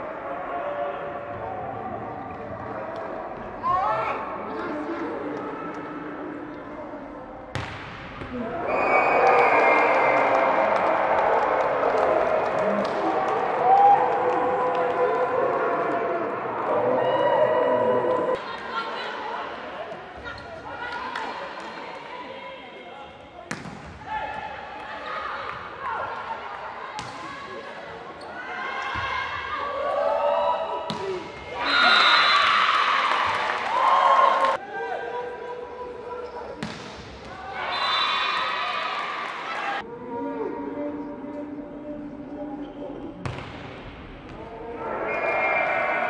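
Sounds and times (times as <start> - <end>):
voices echoing in a hall: 0.0 - 46.0.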